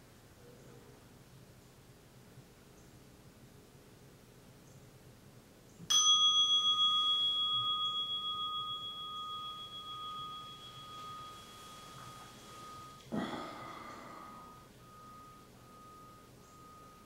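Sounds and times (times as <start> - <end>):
meditation bell ringing: 5.9 - 17.0.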